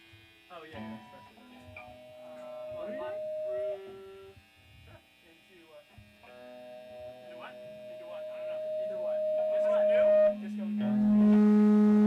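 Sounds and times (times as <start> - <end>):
guitar amplifier held tones: 0.0 - 5.1, 5.9 - 12.0
faint talk: 0.5 - 4.0, 7.0 - 11.4.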